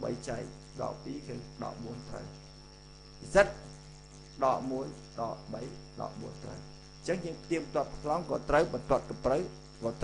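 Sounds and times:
man lecturing: 0.0s - 2.4s, 3.2s - 3.7s, 4.4s - 10.0s
electrical hum: 0.0s - 10.0s
high-pitched whine: 0.0s - 10.0s.

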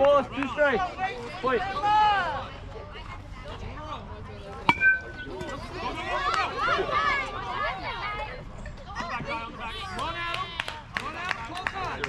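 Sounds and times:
metal bat hitting ball: 4.7s - 5.6s.

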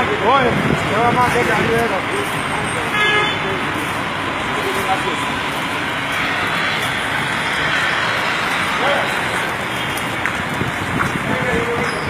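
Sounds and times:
people talking: 0.0s - 12.0s
urban traffic noise: 0.0s - 12.0s
vehicle horn toot: 2.9s - 3.5s.

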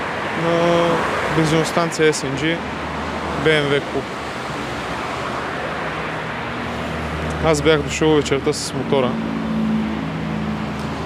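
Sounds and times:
road traffic rush: 0.0s - 11.0s.

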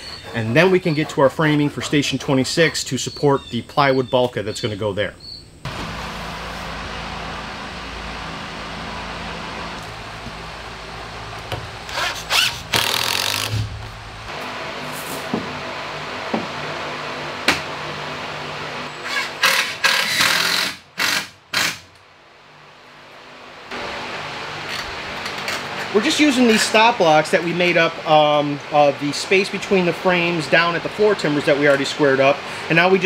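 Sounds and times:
steady background hum: 0.0s - 33.0s
cordless drill driving screws: 11.9s - 13.6s, 19.1s - 21.8s.

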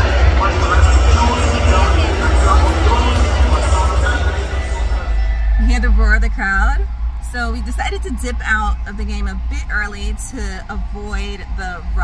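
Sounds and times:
woman speaking: 5.6s - 12.0s.

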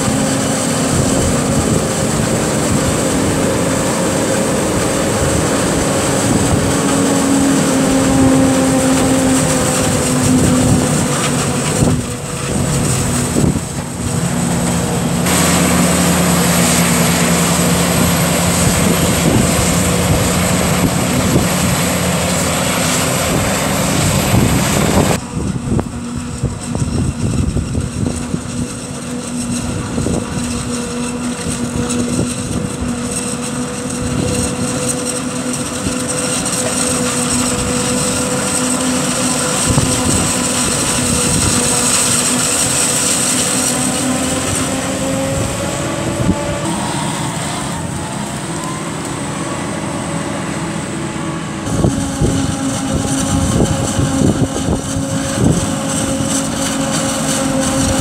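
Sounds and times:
high machine whine: 0.0s - 58.0s
tractor pulling a trailer: 0.0s - 58.0s
forage harvester chopping maize: 28.4s - 51.1s, 51.7s - 58.0s.

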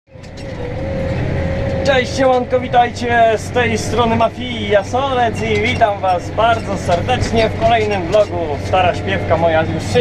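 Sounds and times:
faint whine: 0.1s - 10.0s
tractor engine drone: 0.1s - 10.0s.

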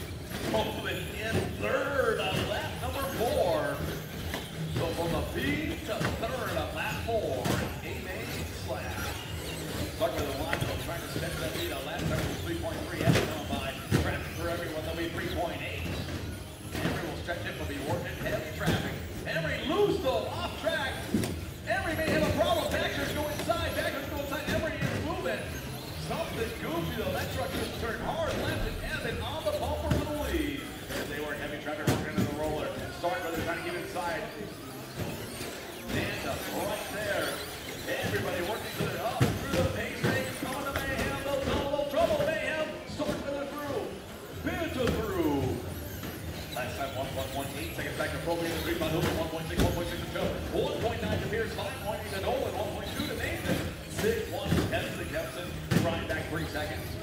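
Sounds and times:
voices talking in a hall: 0.0s - 57.0s.

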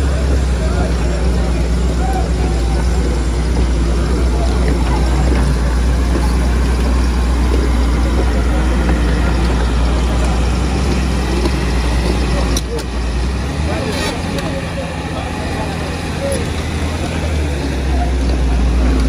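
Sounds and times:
crowd chatter: 0.0s - 19.0s
excavator diesel engine humming: 0.0s - 19.0s.

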